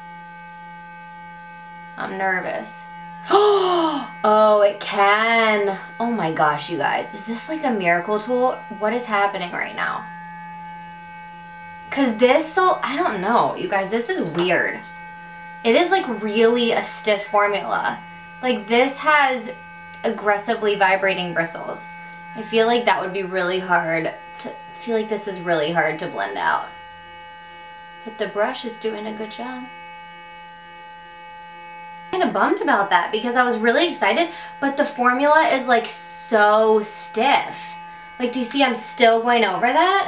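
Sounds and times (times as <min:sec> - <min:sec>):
electric brush humming: 0:00.0 - 0:40.0
faint pulsing tone: 0:00.0 - 0:40.0.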